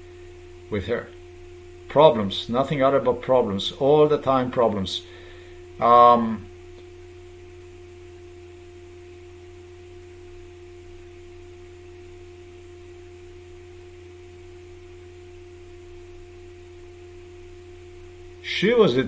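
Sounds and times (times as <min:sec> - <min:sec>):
steady electrical hum: 0:00.0 - 0:19.0.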